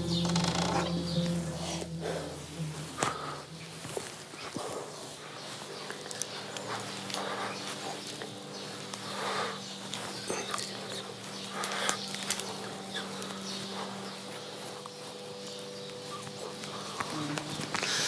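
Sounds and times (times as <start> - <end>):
steady low hum: 0.0 - 18.0
man breathing hard: 1.6 - 14.8, 16.5 - 18.0.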